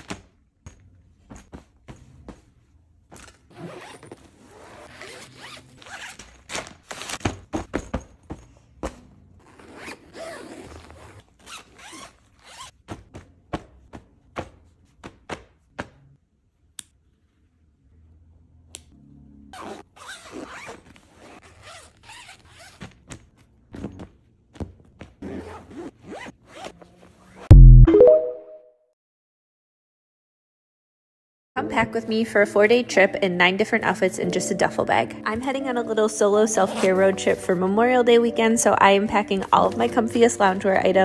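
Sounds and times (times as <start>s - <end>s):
fabric handling sounds: 0.0s - 15.6s
zipper being pulled shut: 3.2s - 7.2s, 9.4s - 12.8s, 19.6s - 23.2s.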